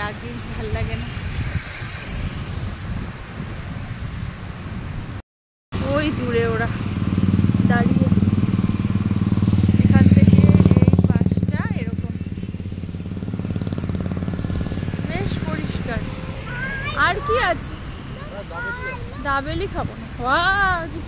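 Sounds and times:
small motorbike engine running: 5.8 - 17.3.

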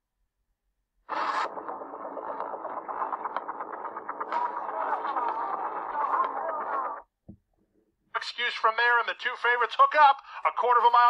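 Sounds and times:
muffled advertisement soundtrack: 1.1 - 7.1, 8.1 - 11.0.

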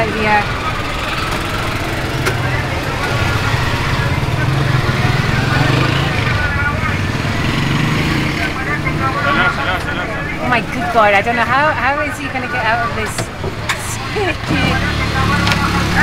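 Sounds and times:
people's voices: 0.0 - 16.0
street traffic: 0.0 - 16.0.

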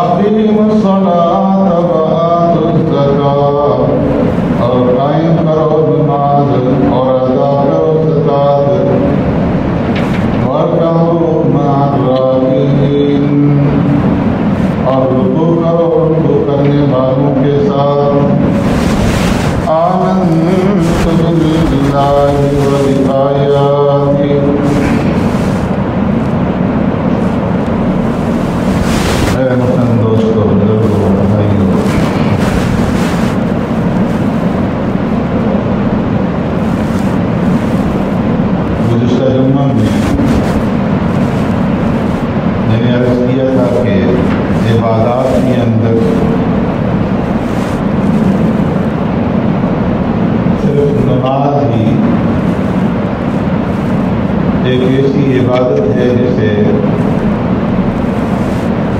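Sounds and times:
man chanting melodically: 0.0 - 9.3, 10.3 - 25.6, 27.2 - 33.5, 38.4 - 48.6, 50.0 - 57.4
rushing noise: 3.6 - 58.9.

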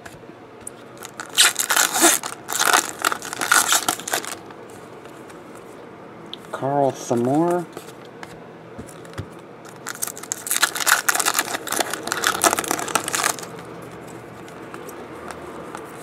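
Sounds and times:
foil wrapper torn and crinkled: 1.0 - 4.4, 9.7 - 13.6.

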